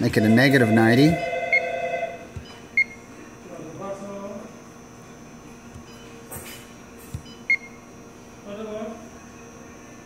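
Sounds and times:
touchscreen beeps: 0.0 - 3.0, 5.8 - 6.2, 7.2 - 7.8.

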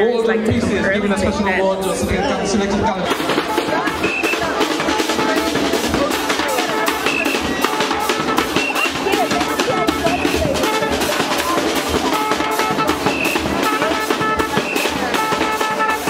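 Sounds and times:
bass drum: 1.9 - 16.0
snare drums: 1.9 - 16.0.

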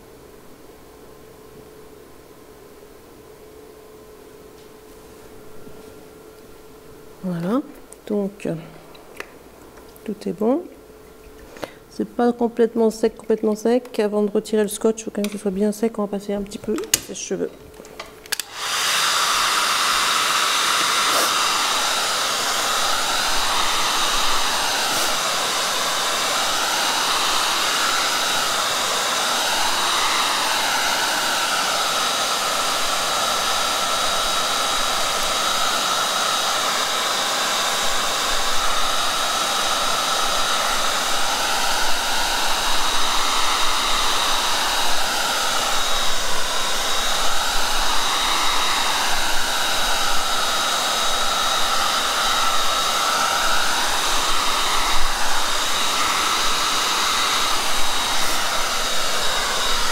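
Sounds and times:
hair dryer blowing: 16.2 - 59.9.

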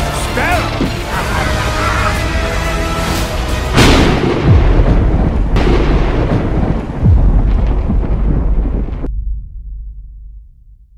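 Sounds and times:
cinematic score: 0.0 - 10.9
heavy boom hits: 3.7 - 10.6.

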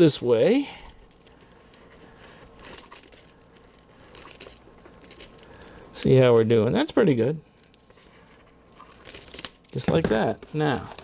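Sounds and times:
plastic film crinkling: 0.0 - 11.0.

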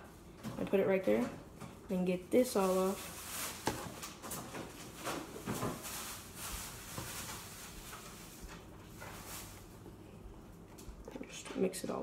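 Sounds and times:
slime wiping and squishing: 5.3 - 10.2.

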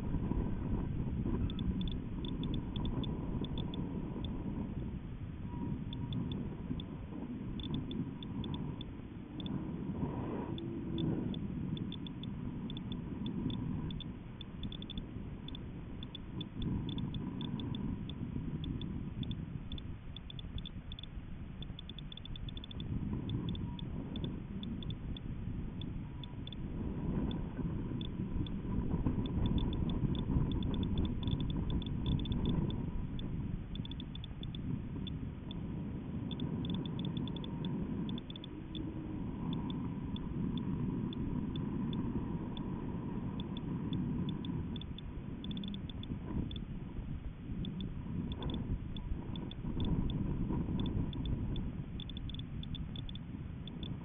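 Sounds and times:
small ticks: 0.0 - 4.8, 5.5 - 54.0
wind rumble on microphone: 0.0 - 54.0
faint steady high tone: 5.4 - 46.7, 50.8 - 54.0.

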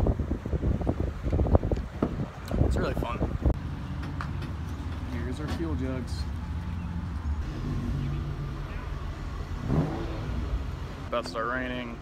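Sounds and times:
vehicle and trailer rumbling on pavement: 0.0 - 12.0.

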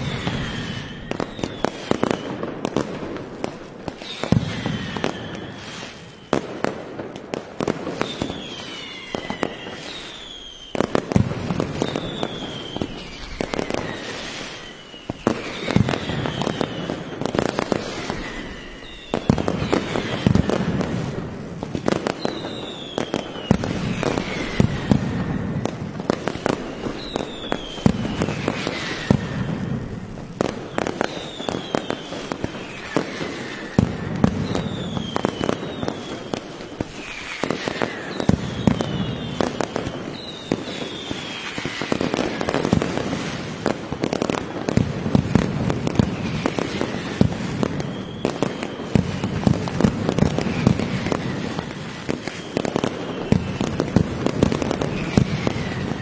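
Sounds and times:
falling whistles: 0.0 - 2.6, 3.9 - 6.5, 7.9 - 21.0, 21.8 - 42.8, 45.4 - 56.0
firecracker bangs: 3.9 - 10.0.

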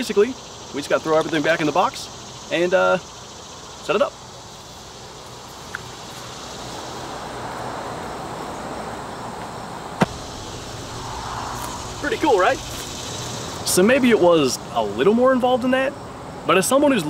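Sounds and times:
steady outdoor noise: 0.0 - 17.0.

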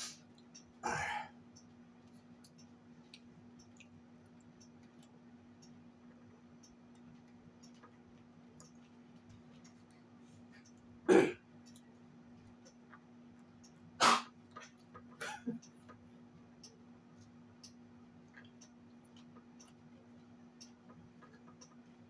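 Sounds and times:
soft eating noises: 0.0 - 22.0
steady low hum: 0.0 - 22.0.

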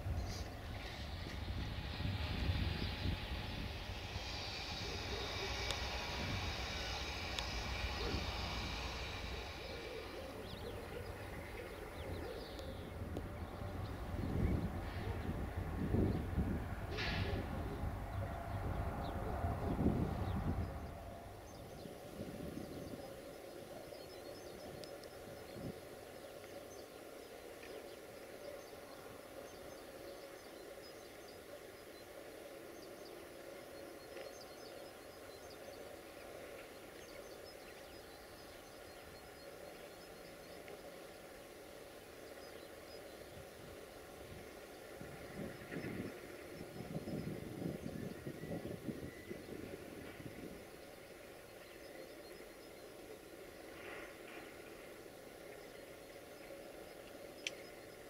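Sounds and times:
birds chirping: 0.0 - 58.0
distant diesel locomotive running: 0.0 - 58.0.

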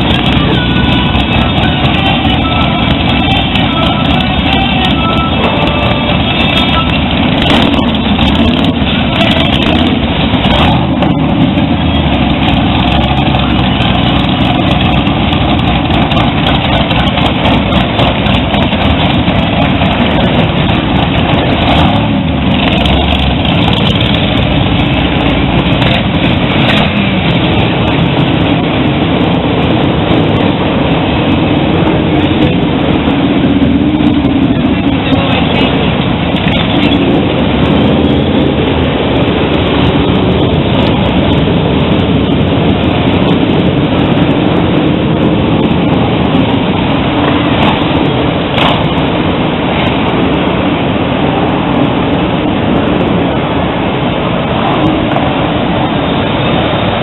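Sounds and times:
motorcycle engines rumbling: 0.0 - 57.0.

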